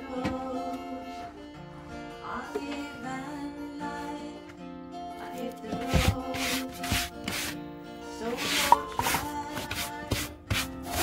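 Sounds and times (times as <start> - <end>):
brush sweeping hard floor: 5.7 - 7.6, 8.2 - 11.0.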